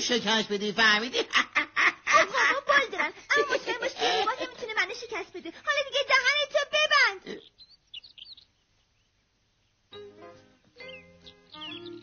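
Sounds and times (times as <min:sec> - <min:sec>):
faint high bird chirps: 0:07.3 - 0:10.1, 0:10.8 - 0:12.0.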